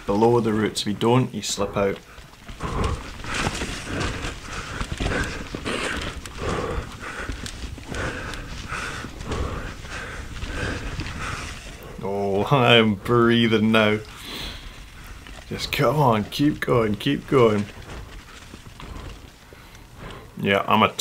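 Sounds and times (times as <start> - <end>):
heavy rhythmic panting: 0.0 - 21.0
bike rattling and knocking: 1.8 - 20.2.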